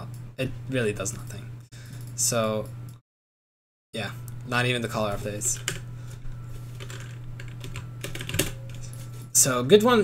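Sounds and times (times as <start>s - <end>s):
low electrical hum: 0.0s - 3.0s, 4.0s - 10.0s
computer keyboard and mouse clicks: 6.8s - 8.8s.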